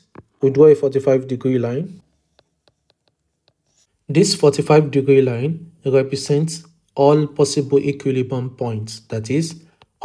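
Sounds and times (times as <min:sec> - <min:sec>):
stylus tapping: 0:00.0 - 0:00.4, 0:02.0 - 0:03.9.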